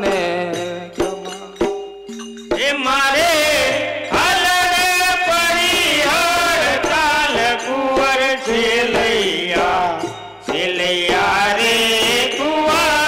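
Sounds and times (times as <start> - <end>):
person singing chant-like song: 0.0 - 1.6, 2.6 - 13.0.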